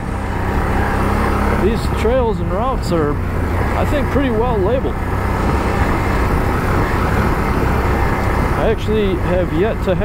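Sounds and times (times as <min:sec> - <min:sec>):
quad bike engine running: 0:00.0 - 0:10.0.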